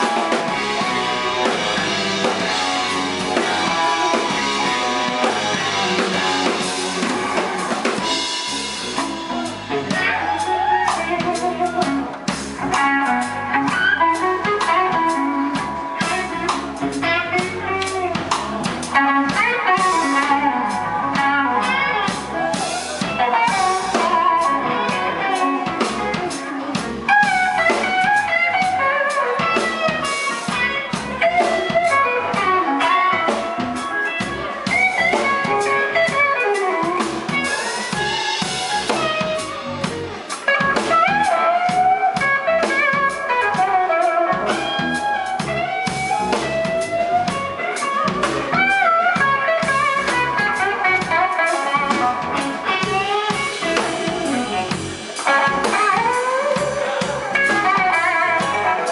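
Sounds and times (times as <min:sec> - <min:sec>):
drums: 0:00.0 - 0:58.9
electric guitar lead: 0:00.0 - 0:58.9
rhythm guitar: 0:00.0 - 0:58.9.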